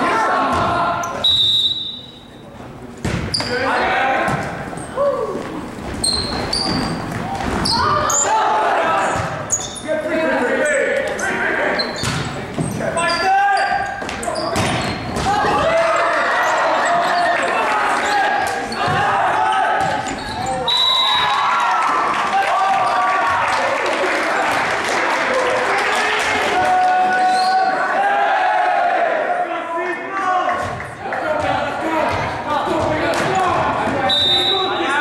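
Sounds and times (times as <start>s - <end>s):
volleyball being hit: 3.0s - 3.6s
people calling out: 3.3s - 12.0s.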